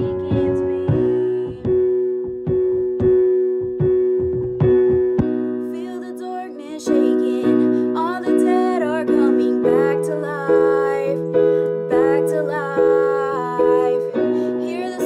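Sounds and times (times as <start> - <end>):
young woman singing: 0.0 - 2.1, 5.6 - 15.0
keyboard chords: 0.0 - 15.0.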